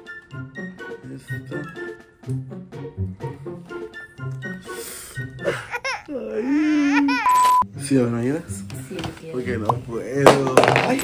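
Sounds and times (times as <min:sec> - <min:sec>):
man groaning vocally: 0:06.1 - 0:06.9
censor bleep: 0:07.3 - 0:07.6.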